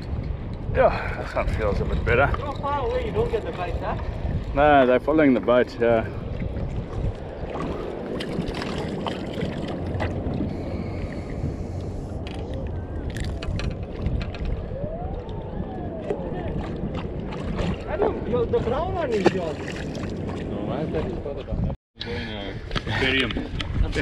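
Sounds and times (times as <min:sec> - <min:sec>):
water around boat: 0:00.0 - 0:24.0
wind: 0:00.0 - 0:24.0.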